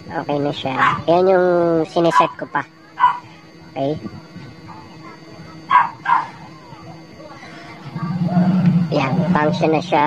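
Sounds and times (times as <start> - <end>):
faint steady hum: 0.0 - 10.0
dog barking: 0.8 - 1.1, 2.1 - 2.4, 3.0 - 3.3, 5.7 - 6.4.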